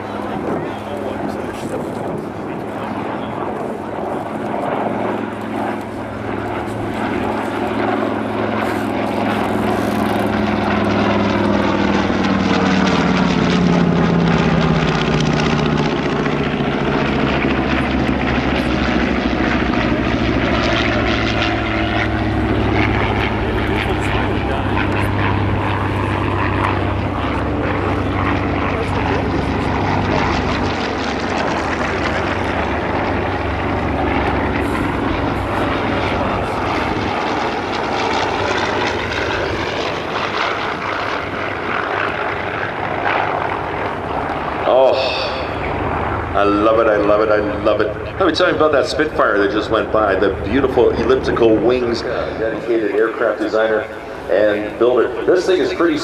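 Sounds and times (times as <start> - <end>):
propeller planes flying past: 0.0 - 56.0.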